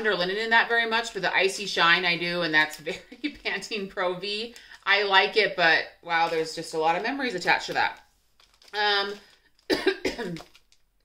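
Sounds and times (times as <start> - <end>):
woman coughing: 9.7 - 10.5.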